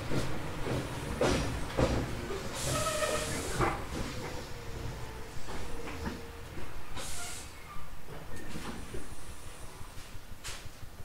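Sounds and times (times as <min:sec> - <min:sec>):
compressed air hiss: 0:07.0 - 0:07.6.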